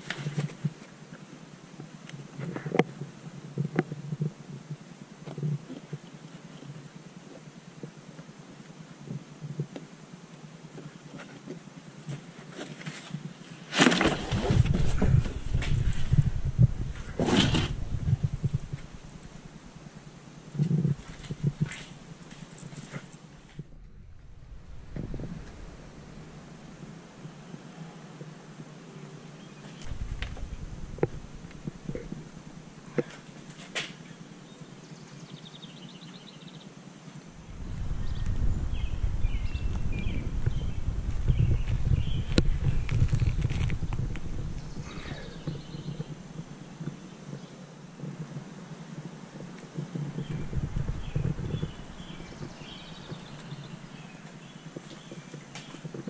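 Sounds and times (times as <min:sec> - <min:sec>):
wind rumbling on microphone: 0:14.0 - 0:33.6, 0:37.2 - 0:56.0.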